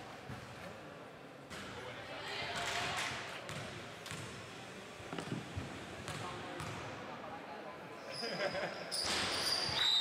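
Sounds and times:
voices in a hall: 0.0 - 10.0
basketball bouncing on gym floor: 3.5 - 4.3, 6.1 - 6.8
sneakers squealing on court: 8.1 - 10.0.

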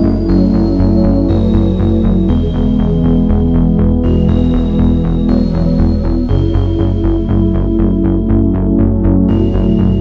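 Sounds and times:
steady pulsing beat: 0.0 - 10.0.

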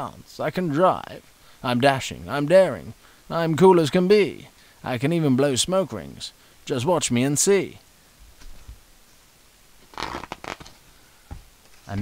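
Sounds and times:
paper page rustling: 9.8 - 10.8.

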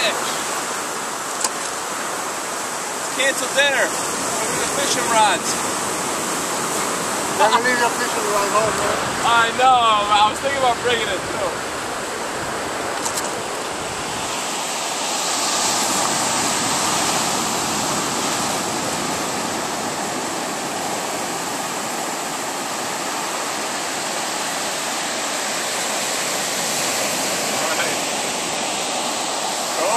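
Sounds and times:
ocean waves breaking on beach: 0.0 - 29.9.

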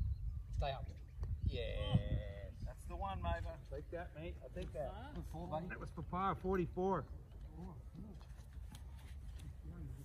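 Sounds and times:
rustles: 7.4 - 10.0.

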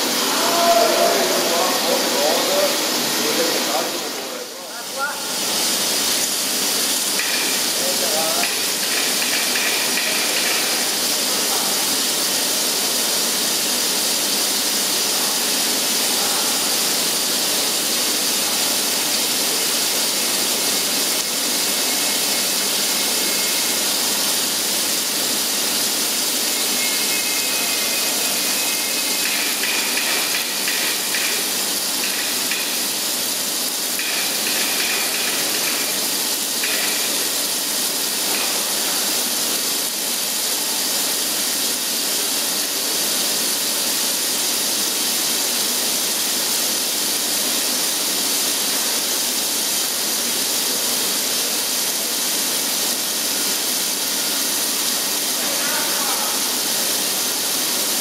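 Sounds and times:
coolant spraying: 0.0 - 58.0
milling machine hiss: 0.0 - 58.0.

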